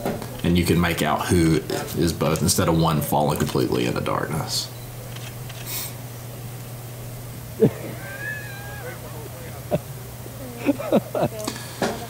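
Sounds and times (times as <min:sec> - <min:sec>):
low hum: 0:00.0 - 0:11.4.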